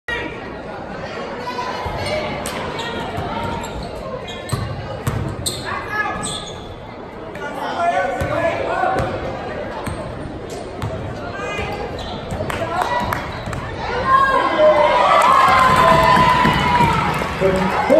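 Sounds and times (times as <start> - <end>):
basketball bouncing on wooden floor: 4.5 - 5.4.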